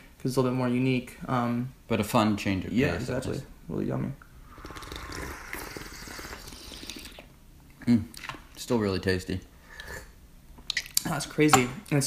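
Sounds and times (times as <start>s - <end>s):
tea slurping: 4.4s - 7.4s.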